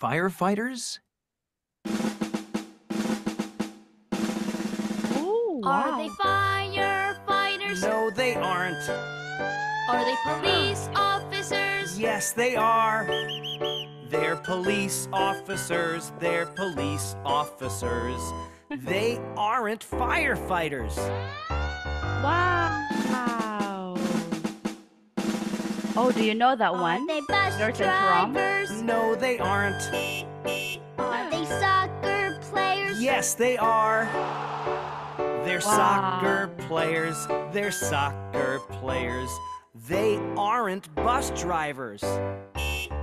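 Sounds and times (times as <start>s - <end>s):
snare drum rolls: 1.9s - 5.3s, 23.0s - 26.4s.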